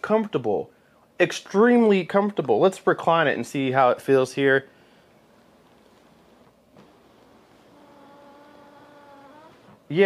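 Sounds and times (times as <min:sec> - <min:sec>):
electric recliner motor humming: 0:05.3 - 0:09.9.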